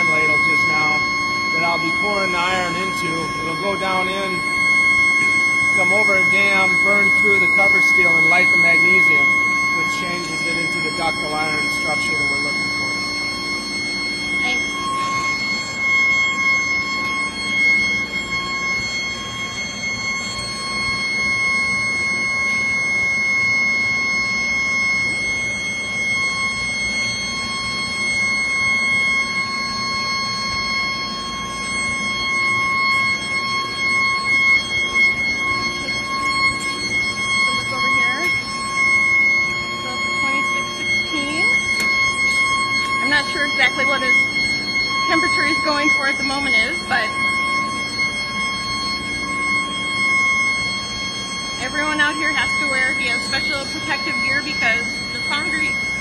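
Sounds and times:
furnace high-pitched hum: 0.0 - 56.0.

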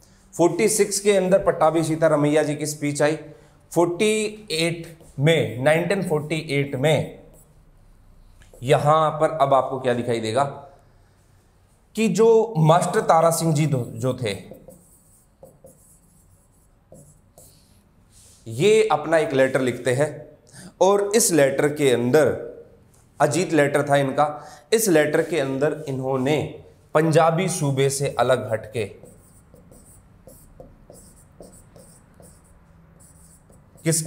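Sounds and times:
marker pen scratching on whiteboard: 4.8 - 5.3, 6.1 - 7.7, 12.9 - 17.9, 27.4 - 34.0
pen tapping on whiteboard: 14.5 - 15.9, 29.0 - 33.6.

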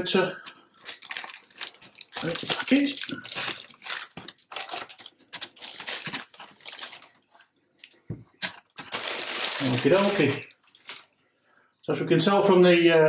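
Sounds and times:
plastic bag crinkling: 0.6 - 7.4, 8.5 - 11.2.

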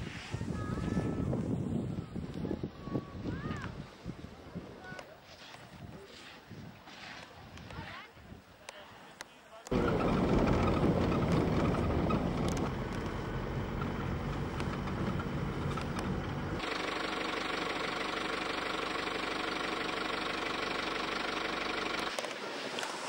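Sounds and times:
vehicle engine and road noise: 9.7 - 23.0.

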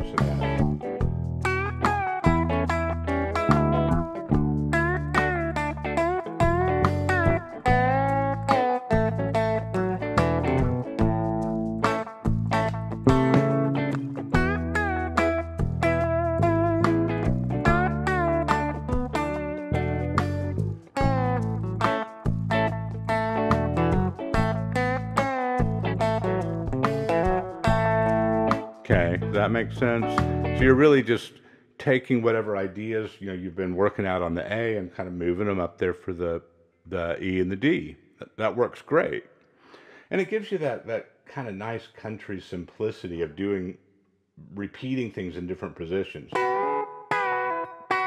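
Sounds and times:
backing track with bass line: 0.0 - 31.0
electric guitar licks with bends: 0.0 - 31.0, 46.3 - 48.0.

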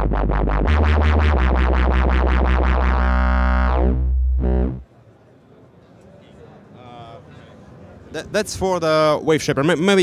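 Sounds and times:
fast plucked synth sequence: 0.0 - 4.8
low synth bass note: 0.0 - 4.8.

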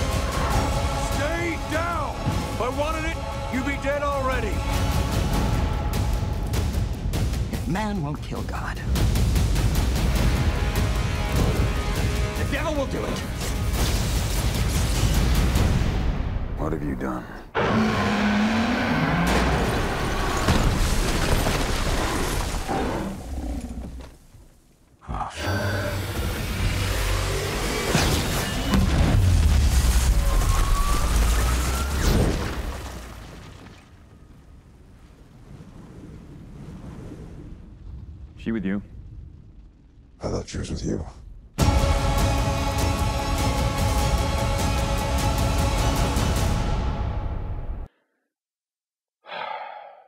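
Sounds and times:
deep rumble: 34.8 - 42.5.

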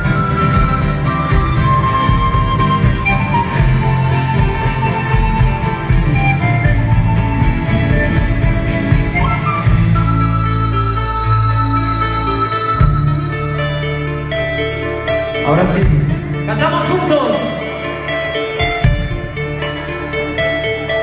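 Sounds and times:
folk band playing: 0.0 - 21.0.

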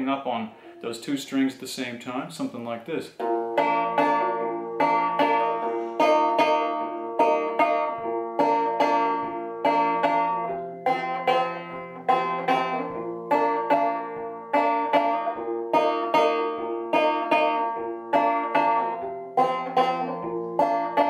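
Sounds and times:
banjo plucking notes and chords: 0.0 - 21.0.

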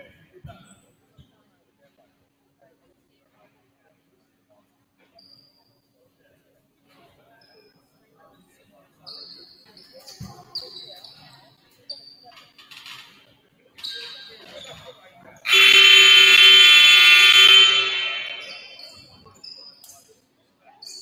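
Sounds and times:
scoreboard horn blast: 15.5 - 18.8.

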